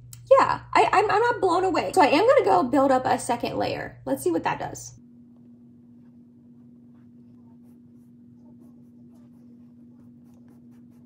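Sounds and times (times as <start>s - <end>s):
steady low hum: 0.0s - 11.0s
makeup sponge patting face: 6.0s - 11.0s.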